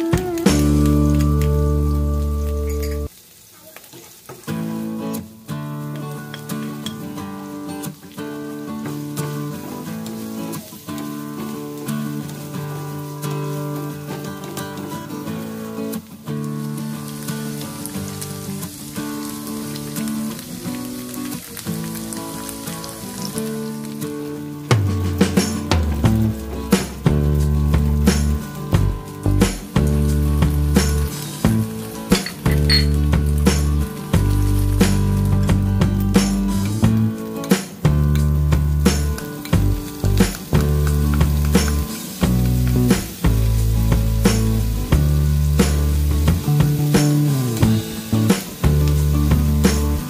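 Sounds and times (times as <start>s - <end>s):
acoustic guitar music: 0.0s - 3.2s, 4.3s - 50.0s
food sizzling in oil: 0.0s - 50.0s.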